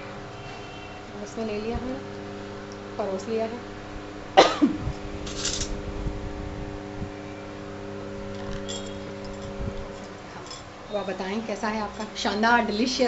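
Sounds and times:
steady low hum: 0:00.0 - 0:13.0
cough-like vocal burst: 0:04.4 - 0:04.9.

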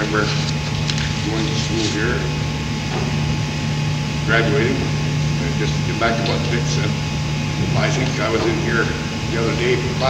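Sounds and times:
man speaking: 0:00.0 - 0:00.5, 0:01.2 - 0:02.5, 0:04.2 - 0:07.0, 0:07.6 - 0:10.0
steady low hum: 0:00.0 - 0:10.0.

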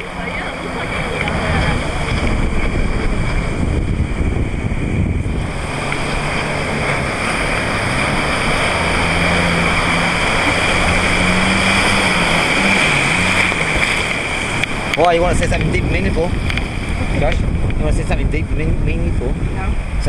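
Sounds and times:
jet ski engine running: 0:00.0 - 0:20.0
wind on microphone: 0:00.0 - 0:20.0.

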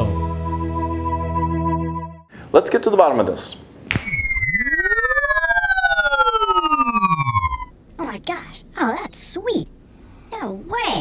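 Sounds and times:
fast pulsing flutter: 0:04.0 - 0:07.7
gliding electronic tones: 0:04.0 - 0:07.8.

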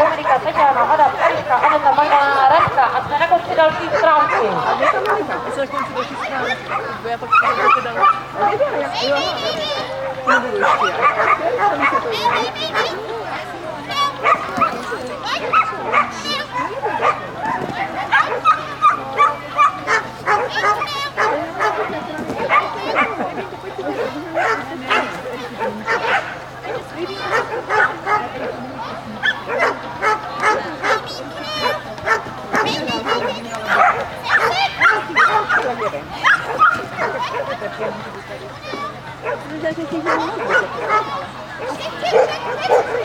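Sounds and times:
dog barking and yapping: 0:00.0 - 0:03.0, 0:03.6 - 0:13.0, 0:13.9 - 0:23.2, 0:23.9 - 0:28.6, 0:29.2 - 0:38.1, 0:39.2 - 0:43.0.

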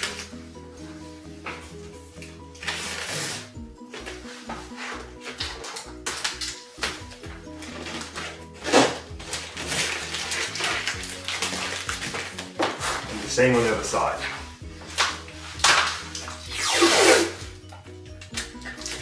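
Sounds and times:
packing tape pulled off roll: 0:00.0 - 0:00.4, 0:02.5 - 0:13.4, 0:14.9 - 0:17.5, 0:18.2 - 0:19.0
background music: 0:00.0 - 0:19.0.

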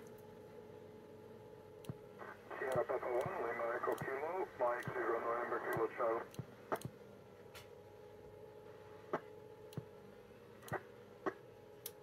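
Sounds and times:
radio click: 0:01.9 - 0:07.0
person speaking over radio: 0:02.5 - 0:06.3.

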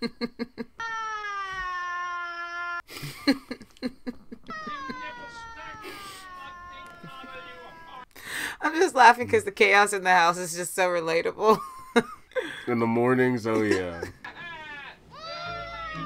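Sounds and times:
small boy wailing: 0:00.8 - 0:02.9, 0:04.5 - 0:08.1, 0:14.3 - 0:16.0
bursts of laughter: 0:04.5 - 0:08.1, 0:13.7 - 0:15.0.

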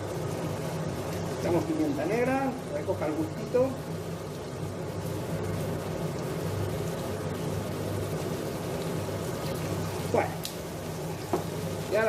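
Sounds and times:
vegetables sizzling in a pot: 0:00.0 - 0:12.0.

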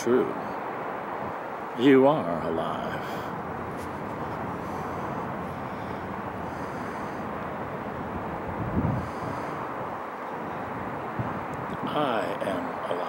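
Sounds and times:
breeze on microphone: 0:00.0 - 0:13.0
distant traffic rumble: 0:00.0 - 0:13.0.

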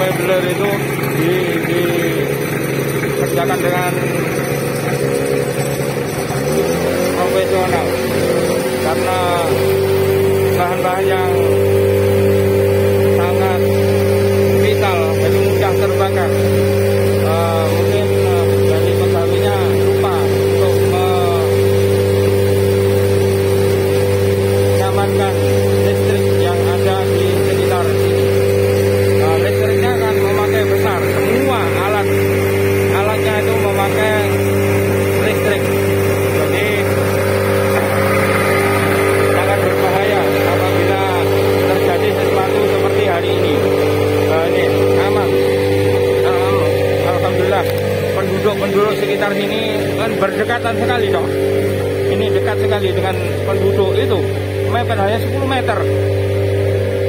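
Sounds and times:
diesel engine humming: 0:00.0 - 0:57.0.

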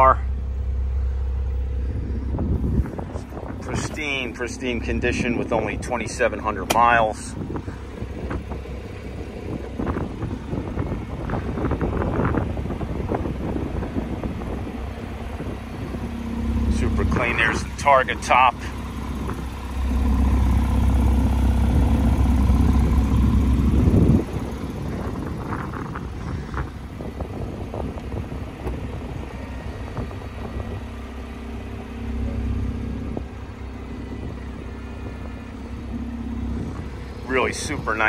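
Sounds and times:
low motor hum: 0:00.0 - 0:38.0
quieter whirring: 0:00.0 - 0:38.0.

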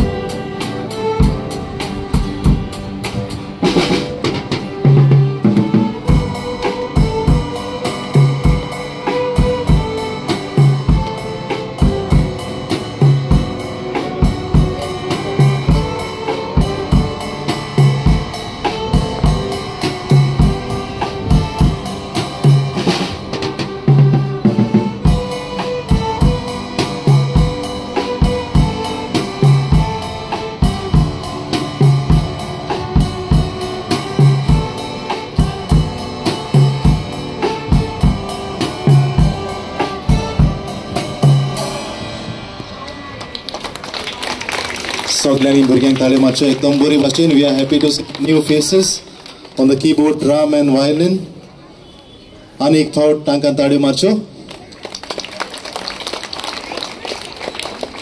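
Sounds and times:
live band playing a tune: 0:00.0 - 0:51.8, 0:54.3 - 0:58.0.

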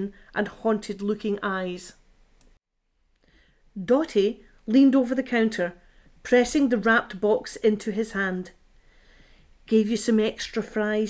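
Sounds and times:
person reading aloud: 0:00.0 - 0:02.0, 0:03.7 - 0:08.6, 0:09.6 - 0:11.0.

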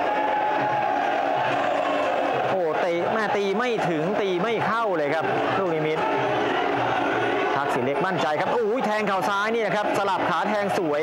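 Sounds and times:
stadium crowd shouting: 0:00.0 - 0:11.0.

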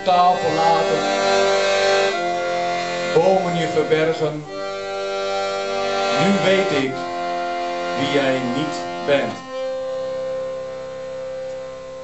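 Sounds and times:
accordion sustained note: 0:00.0 - 0:12.0.

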